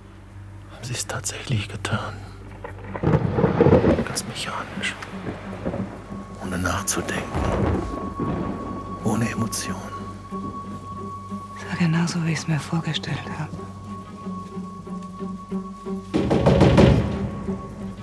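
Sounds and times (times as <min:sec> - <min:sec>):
rain: 0:00.0 - 0:18.0
thunder rumbling: 0:02.5 - 0:14.2
thin steady high tone: 0:06.2 - 0:16.0.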